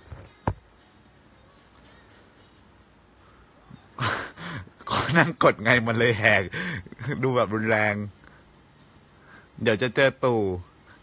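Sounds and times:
man speaking: 4.8s - 8.1s, 9.6s - 10.7s.

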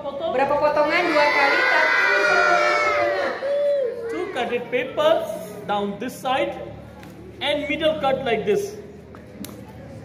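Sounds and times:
children shouting in chorus: 1.0s - 4.4s.

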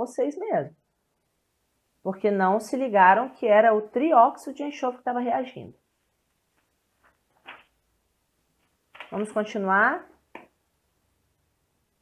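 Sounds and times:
woman's voice: 0.0s - 0.8s, 2.0s - 5.8s, 9.1s - 10.2s.

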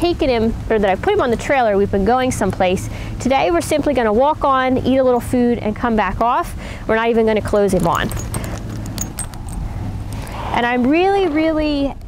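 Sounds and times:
metal lead chain jingling: 7.5s - 10.2s.

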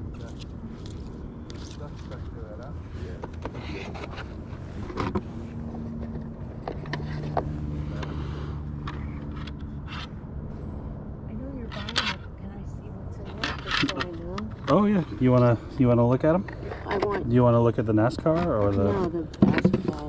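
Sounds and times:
car engine humming: 0.0s - 20.0s.

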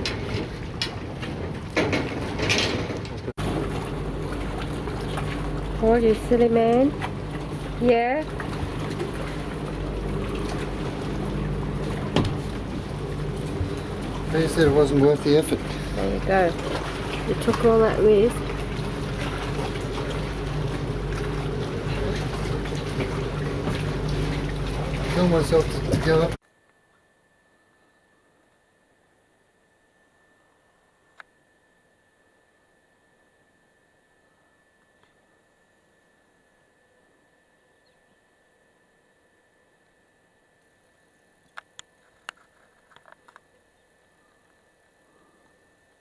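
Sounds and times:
low motor hum: 0.0s - 46.0s.

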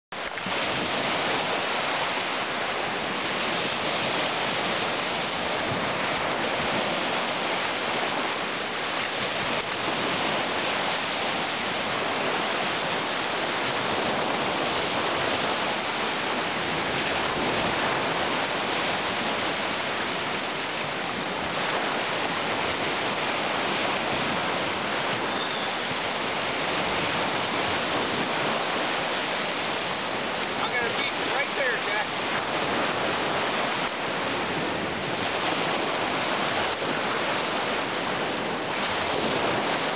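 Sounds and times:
lake waves washing over gravel: 0.1s - 39.9s.

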